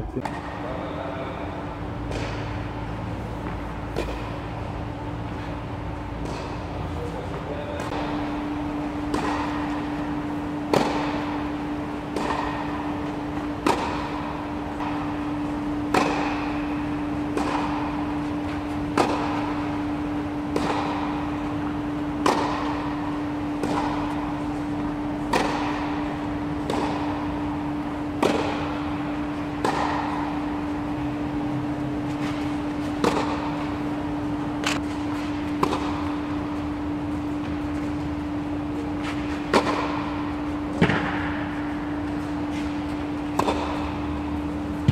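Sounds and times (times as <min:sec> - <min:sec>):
steady low hum: 0:00.0 - 0:44.9
tennis balls struck by rackets: 0:00.2 - 0:44.9.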